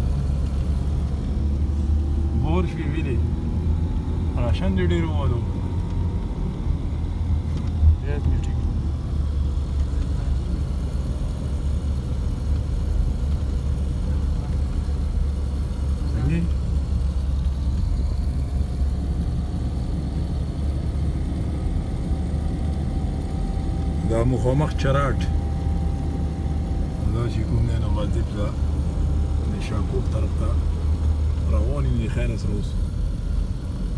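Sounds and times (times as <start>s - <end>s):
car engine and road rumble: 0.0s - 33.9s.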